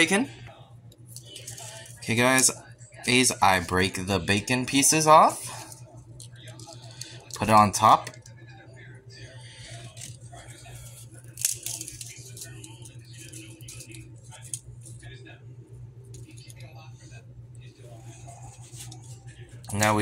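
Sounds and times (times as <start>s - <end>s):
low steady hum: 0.0s - 20.0s
bacon cracking by hand: 11.2s - 12.4s.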